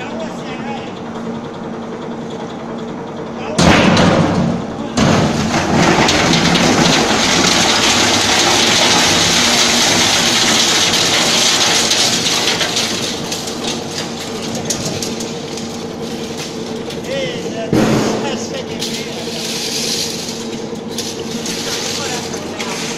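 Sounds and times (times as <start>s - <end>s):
motor and gearbox hum: 0.0s - 22.9s
metal crunching and clattering: 3.6s - 22.9s.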